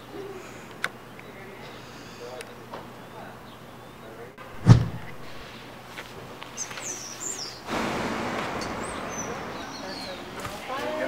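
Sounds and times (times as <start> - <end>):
small birds chirping: 0.0 - 4.4, 5.0 - 7.8, 8.5 - 11.0
minivan driving past: 7.7 - 11.0.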